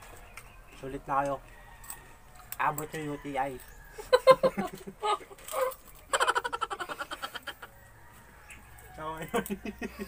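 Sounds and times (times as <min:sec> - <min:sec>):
person laughing: 0:04.0 - 0:07.7, 0:09.3 - 0:10.0.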